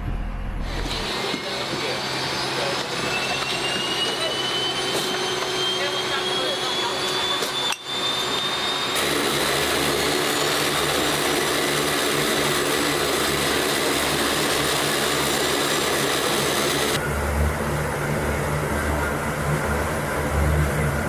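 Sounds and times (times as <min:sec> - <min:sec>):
turboprop engines running: 0:00.0 - 0:21.0.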